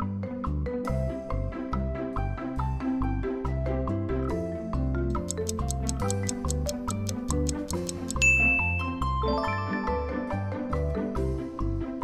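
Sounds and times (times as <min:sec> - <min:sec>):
countdown timer ticking fast: 0:05.1 - 0:08.6
mallet percussion music: 0:05.1 - 0:10.2
bell-like ding: 0:08.2 - 0:10.2.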